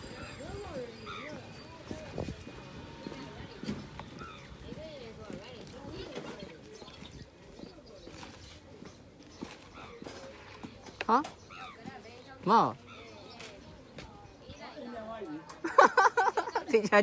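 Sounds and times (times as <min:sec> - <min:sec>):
distant people talking: 0:00.0 - 0:17.0.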